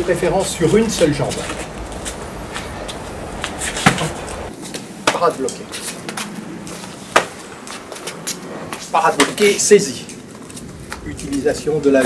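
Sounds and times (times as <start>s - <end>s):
light scuffs: 0.0s - 12.0s.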